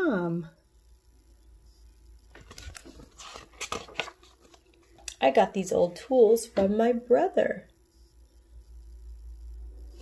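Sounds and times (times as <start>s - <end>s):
book pages turning: 2.3s - 5.1s.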